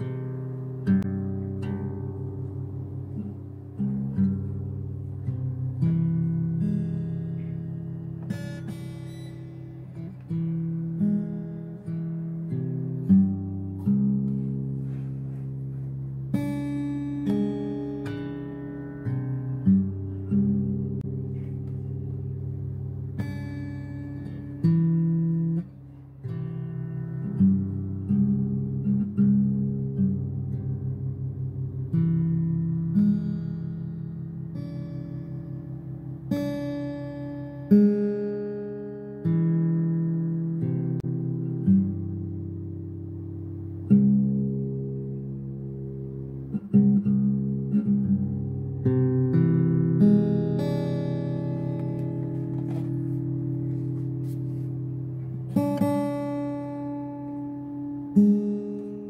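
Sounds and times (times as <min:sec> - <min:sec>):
acoustic guitar chords: 0:00.0 - 0:59.0.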